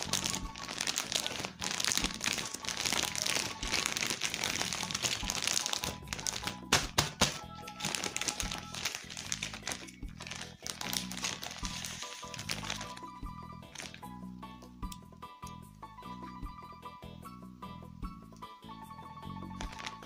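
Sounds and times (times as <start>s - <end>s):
plastic bag crinkling: 0.0s - 14.1s, 19.6s - 20.0s
background music: 0.0s - 20.0s.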